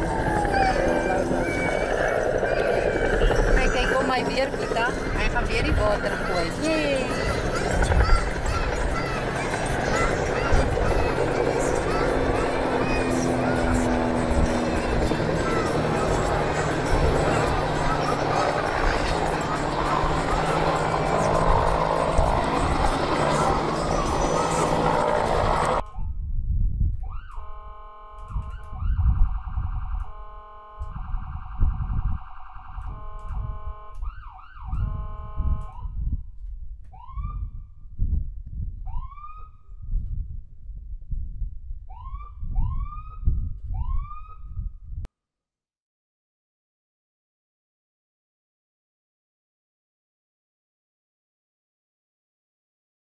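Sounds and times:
emergency siren: 0.0 - 26.1, 27.0 - 36.1, 36.9 - 37.8, 38.8 - 39.8, 41.9 - 44.7.

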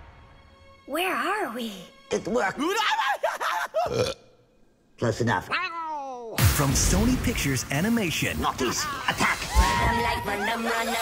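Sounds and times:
short burp: 3.9 - 4.3.

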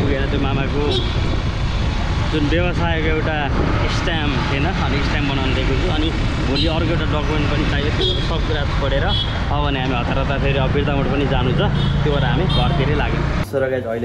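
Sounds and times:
man talking: 0.0 - 1.1, 2.3 - 14.0.

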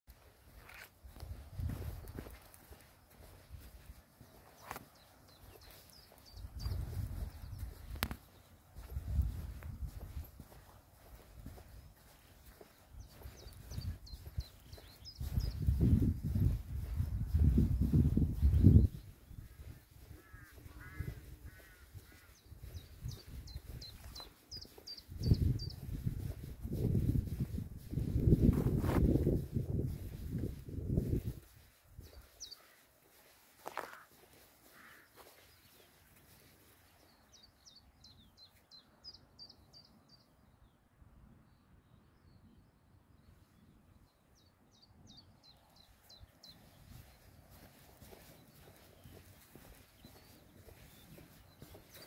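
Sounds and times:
footsteps on dirt path: 0.1 - 38.7, 45.8 - 52.0
wind gusts on microphone: 0.5 - 4.0, 6.3 - 32.4
rough bird calls: 11.1 - 27.5, 29.9 - 37.6.

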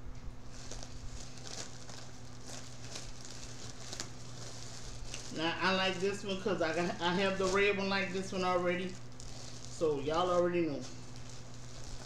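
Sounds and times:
steady low hum: 0.0 - 12.0
plastic packaging crinkling: 0.4 - 12.0.

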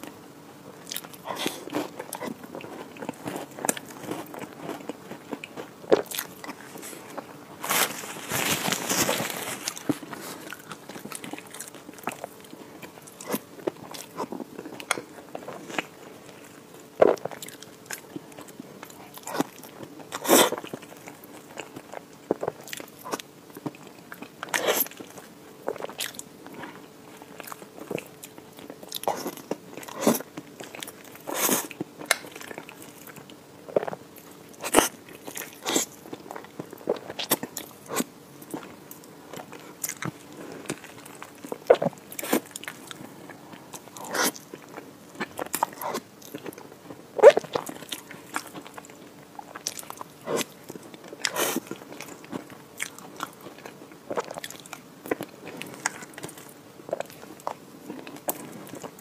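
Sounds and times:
wet chewing: 0.8 - 59.0.

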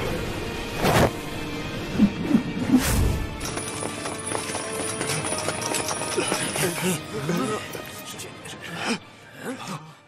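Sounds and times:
background music: 0.0 - 10.0
quick footsteps on stone: 3.3 - 6.9.

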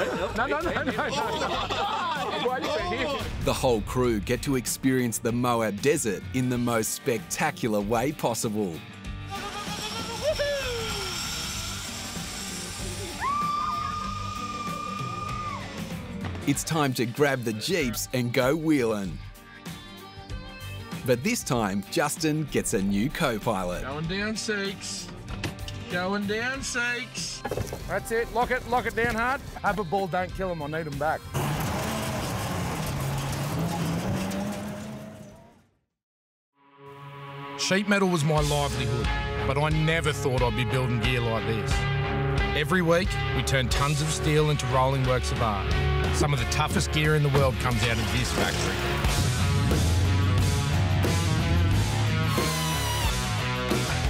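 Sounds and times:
background music: 0.0 - 34.7, 36.6 - 54.0
falling whoop: 9.3 - 11.2, 13.1 - 15.8
high-pitched yell: 9.4 - 11.2
buggy engine running under load: 31.3 - 35.6.

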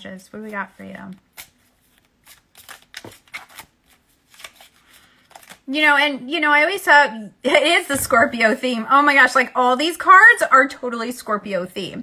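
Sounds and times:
cards being shuffled: 0.3 - 5.6.

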